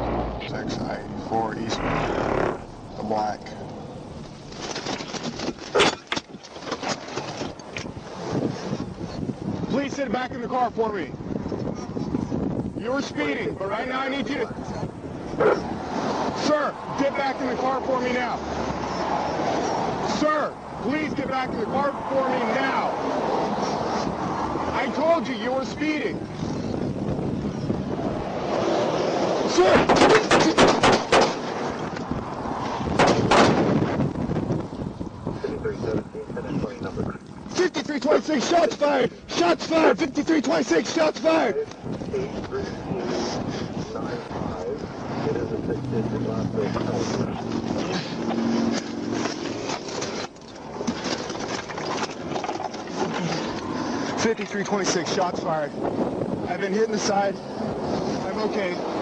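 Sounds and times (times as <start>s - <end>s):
low traffic hum: 0.0s - 59.0s
sharp knocks and rustles: 4.2s - 8.0s
handgun shots: 29.7s - 31.4s.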